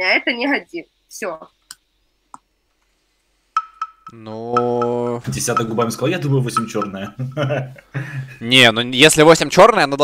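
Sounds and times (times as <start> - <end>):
sharp pitched ticks: 3.6 - 7.4.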